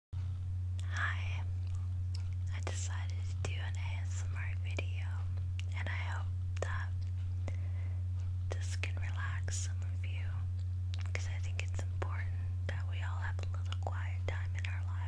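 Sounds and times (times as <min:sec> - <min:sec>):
steady low hum: 0:00.2 - 0:15.0
woman whispering: 0:00.8 - 0:01.7, 0:02.3 - 0:07.0, 0:08.5 - 0:15.0.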